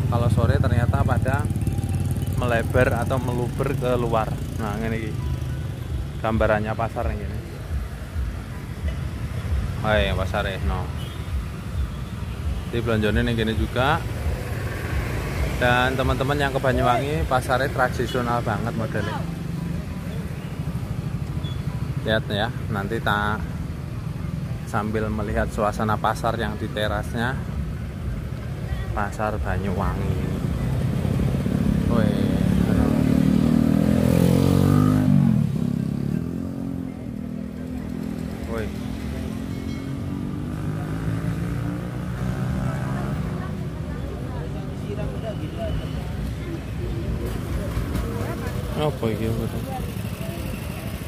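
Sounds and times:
market crowd voices: 0.0 - 51.0
motorcycle engines rumbling: 0.0 - 51.0.

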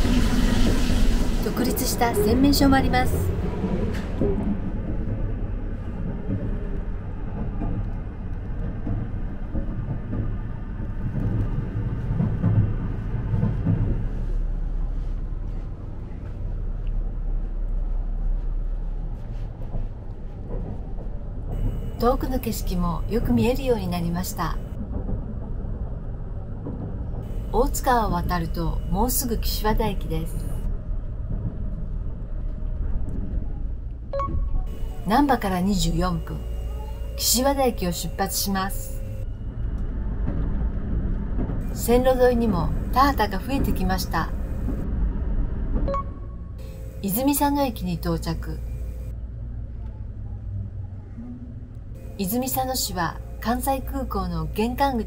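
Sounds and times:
train wheels rumbling on rails: 0.0 - 49.2.

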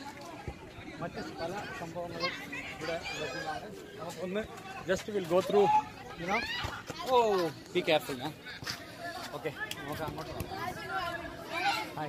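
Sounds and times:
children playing: 0.0 - 12.0.

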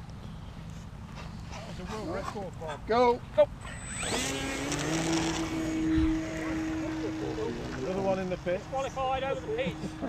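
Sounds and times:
model aeroplane motor buzzing: 3.6 - 10.0.

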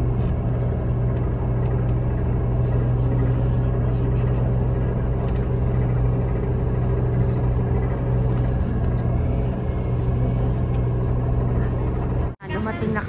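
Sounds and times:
coach engine humming: 0.0 - 13.0
voices: 11.4 - 13.0.

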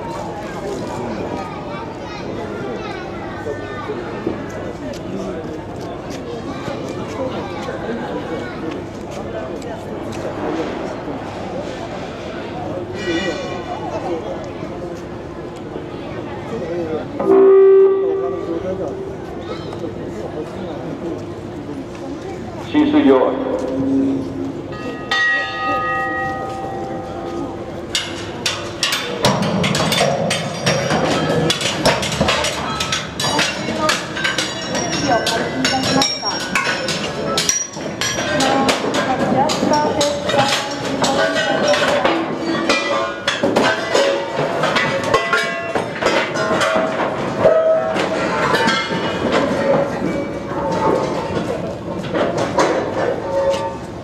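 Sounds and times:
bell-like metallic strike ringing: 24.7 - 27.8
clanging knocks on metal: 27.9 - 47.2.

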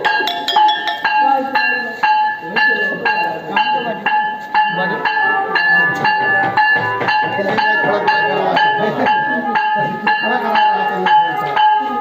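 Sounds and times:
crowd voices: 0.0 - 12.0
ringing metal instrument struck: 0.0 - 12.0.

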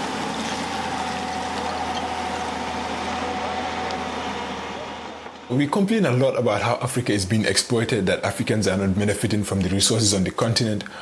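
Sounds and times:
excavator engine hum: 0.0 - 5.7.

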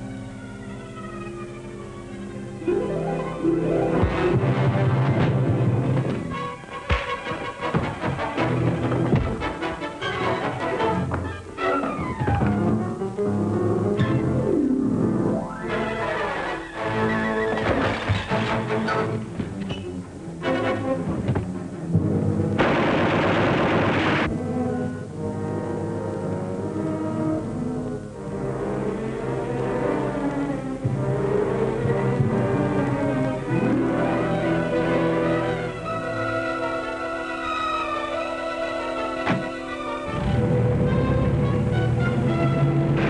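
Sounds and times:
dramatic orchestral music: 0.0 - 43.0
burst of gunfire: 22.6 - 24.3.

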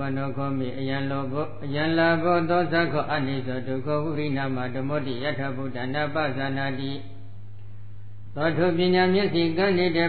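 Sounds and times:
man chanting: 0.0 - 7.3, 8.3 - 10.0.

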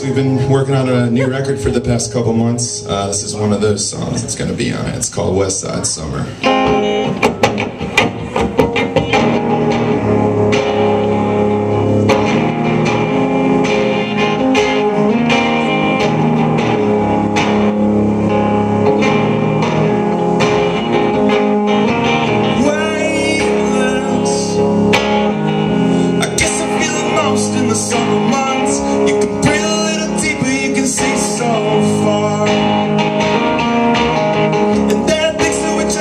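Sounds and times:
electric guitar solo: 0.0 - 4.5, 6.2 - 36.0.

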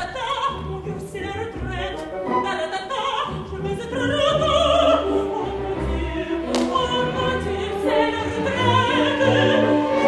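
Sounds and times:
orchestra playing: 0.0 - 10.0
woman singing operatically: 0.0 - 10.0.

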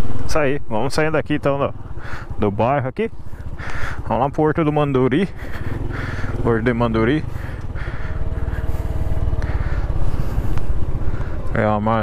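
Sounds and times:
motorcycle engine running: 1.0 - 12.0.

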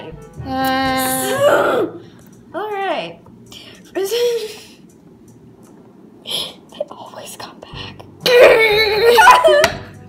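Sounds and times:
person whispering: 6.3 - 7.8.

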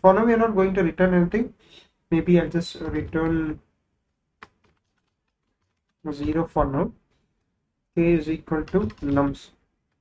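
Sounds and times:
keyboard keystrokes: 2.8 - 3.6, 4.4 - 6.8, 8.6 - 10.0.

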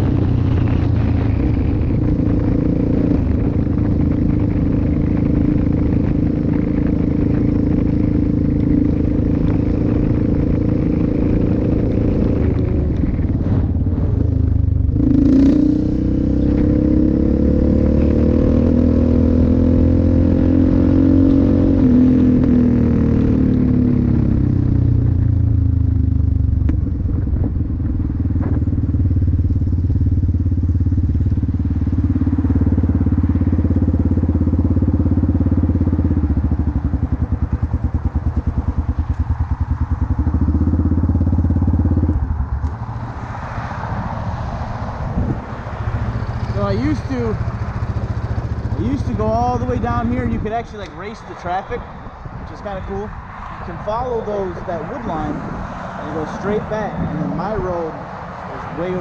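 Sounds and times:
quad bike engine running: 0.0 - 42.8, 45.0 - 51.7, 53.7 - 59.0.

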